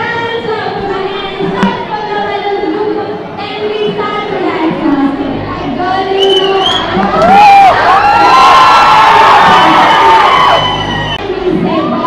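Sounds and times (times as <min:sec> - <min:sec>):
crowd cheering and whooping: 0:06.2 - 0:12.0.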